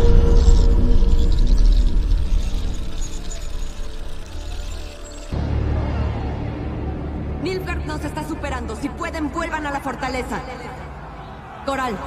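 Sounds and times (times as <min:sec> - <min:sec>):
ominous low rumbling drone: 0:00.0 - 0:09.6.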